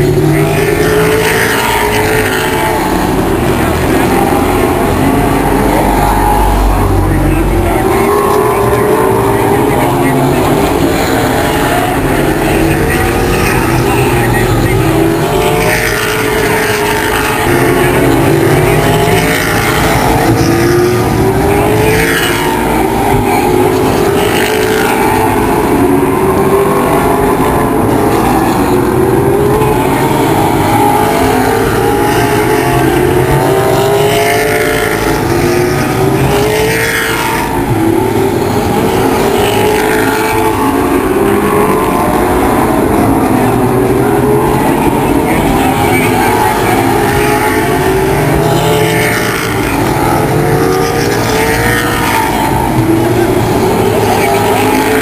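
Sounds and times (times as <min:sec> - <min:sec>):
race car engines accelerating: 0:00.0 - 0:55.0.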